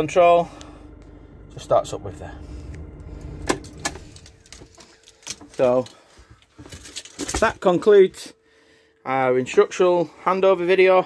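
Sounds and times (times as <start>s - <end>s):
diesel engine idling: 0.0s - 5.6s.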